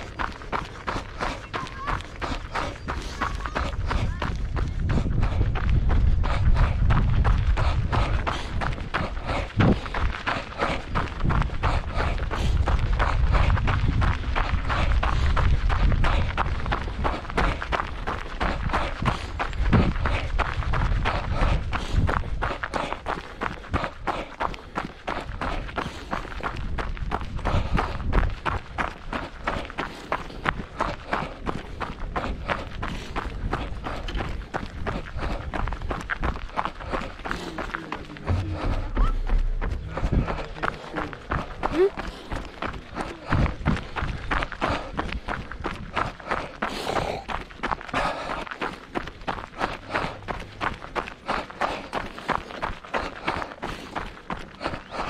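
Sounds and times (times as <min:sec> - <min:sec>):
running footsteps on gravel: 0:00.0 - 0:55.0.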